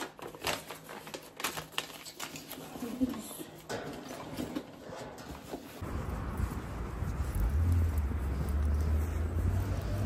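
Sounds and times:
low outdoor rumble: 5.8s - 10.0s.

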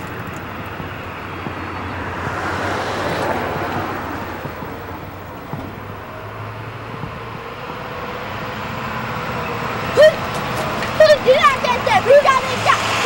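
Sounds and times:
street traffic noise: 0.0s - 13.0s
high-pitched shouts: 10.0s - 13.0s.

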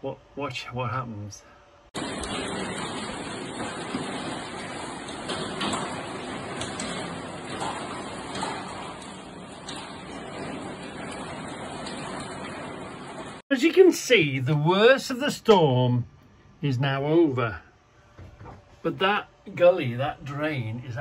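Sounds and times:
faint rain taps: 2.0s - 13.4s
heavy rain pouring: 2.0s - 13.4s.

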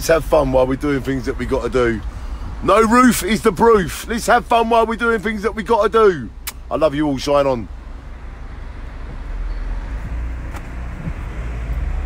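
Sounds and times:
road and wind noise: 0.0s - 12.0s.

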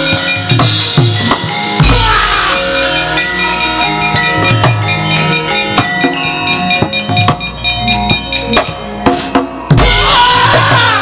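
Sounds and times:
gamelan metallophones and gongs: 0.0s - 11.0s.

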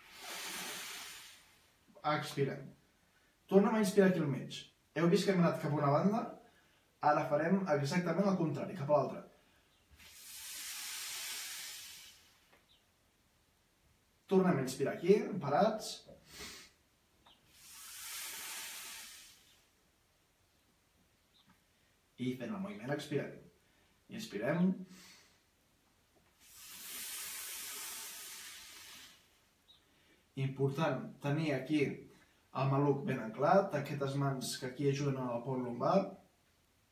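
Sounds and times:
breath blown out through mouth: 0.0s - 1.7s, 10.0s - 12.5s, 17.5s - 19.7s, 26.4s - 29.4s.

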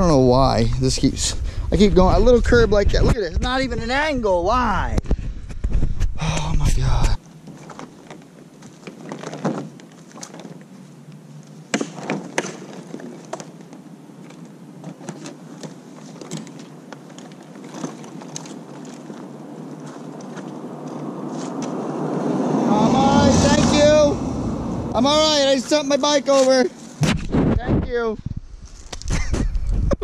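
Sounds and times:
knocks and clatter of trike: 7.5s - 10.6s, 14.8s - 19.2s
car passing: 20.0s - 25.6s.

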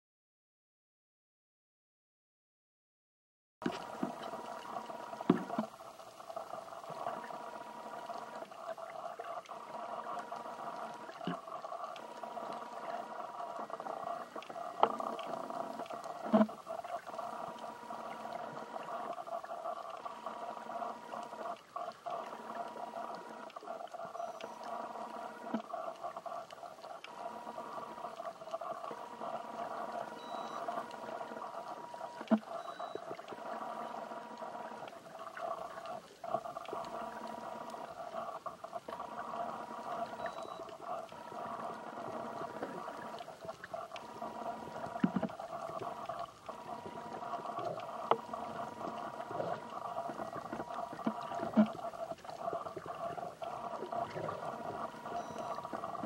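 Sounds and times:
muffled underwater water wash: 3.6s - 56.0s
hum-like tone: 3.7s - 56.0s.

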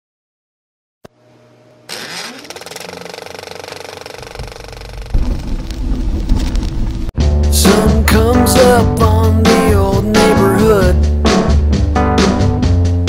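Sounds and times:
film projector clattering: 1.9s - 5.7s
low heavy music: 6.7s - 13.0s.

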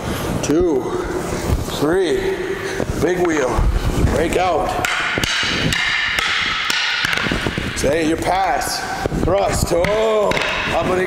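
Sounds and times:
wooden sticks clacking together: 4.7s - 7.9s.

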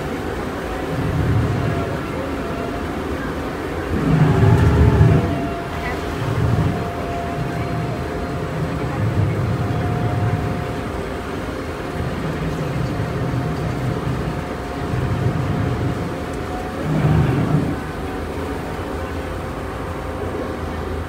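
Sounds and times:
boat engine running: 0.0s - 21.0s.

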